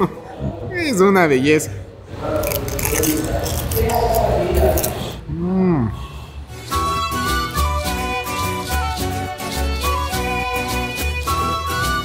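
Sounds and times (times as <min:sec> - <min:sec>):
low hum of voice: 0:02.3 - 0:06.1
crunching fried food being chewed: 0:02.4 - 0:05.2.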